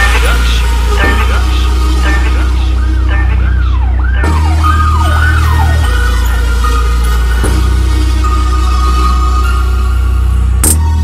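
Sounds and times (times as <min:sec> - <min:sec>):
trap beat: 0:00.0 - 0:05.1
deep bass: 0:00.0 - 0:11.0
siren-like wail: 0:00.5 - 0:07.3.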